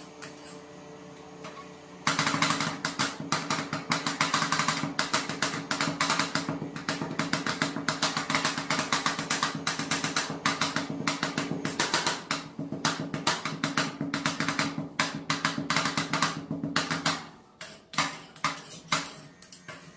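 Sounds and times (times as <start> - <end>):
metal spatulas chopping on metal: 1.4 - 19.9.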